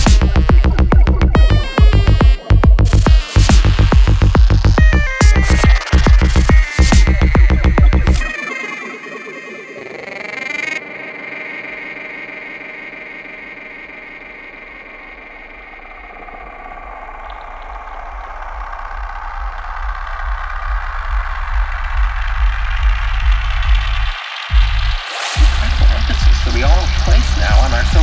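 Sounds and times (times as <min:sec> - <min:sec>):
pulsing bass: 0:00.0 - 0:08.5, 0:11.9 - 0:28.0
synthesizer pad: 0:00.0 - 0:28.0.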